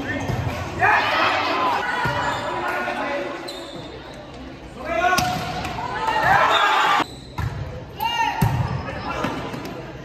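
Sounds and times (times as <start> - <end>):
players and spectators shouting: 0.0 - 3.4.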